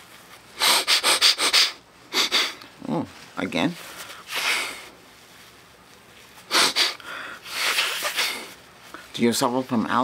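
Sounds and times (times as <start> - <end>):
forceful breaths through nose: 0.6 - 2.6, 6.5 - 9.1.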